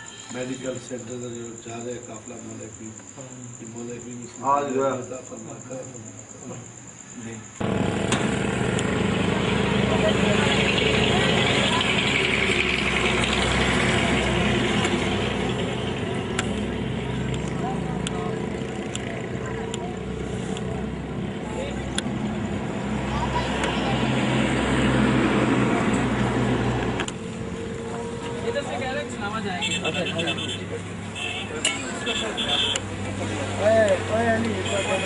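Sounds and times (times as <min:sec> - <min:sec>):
vehicle engine running: 0:07.6 - 0:31.2.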